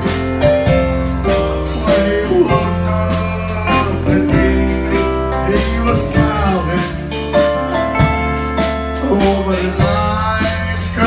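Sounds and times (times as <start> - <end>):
bass line: 0.0 - 11.0
country waltz band playing: 0.0 - 11.0
drums and cymbals: 0.0 - 11.0
keyboard: 0.0 - 11.0.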